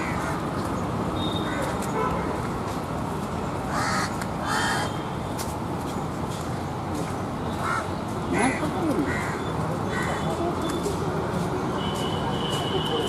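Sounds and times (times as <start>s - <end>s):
crows cawing: 0.0s - 0.5s, 3.7s - 5.0s, 7.6s - 10.4s
street background hum: 0.0s - 13.0s.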